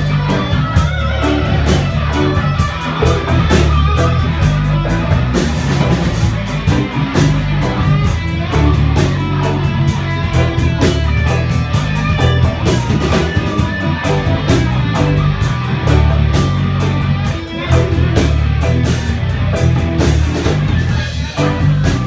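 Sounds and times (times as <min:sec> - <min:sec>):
live rock band playing: 0:00.0 - 0:22.0.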